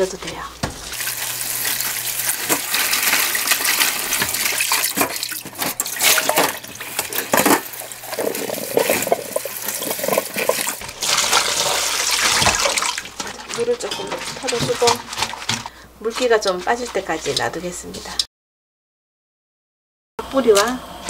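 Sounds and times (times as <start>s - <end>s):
green onions rubbed by hand: 7.7s - 12.4s
tap water splashing into steel sink: 9.3s - 13.3s.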